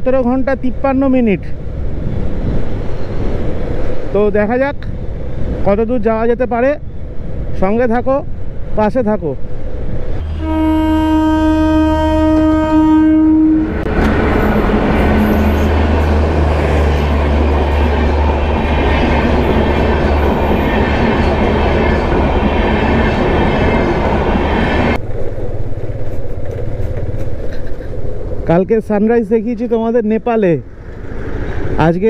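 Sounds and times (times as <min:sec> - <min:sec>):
train horn blast: 0:10.2 - 0:16.6
train wheels rumbling on rails: 0:13.6 - 0:32.0.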